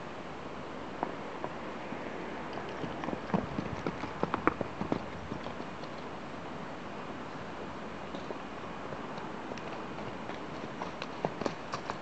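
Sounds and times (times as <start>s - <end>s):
horse hoofbeats on ground: 2.5s - 6.2s, 7.6s - 12.0s.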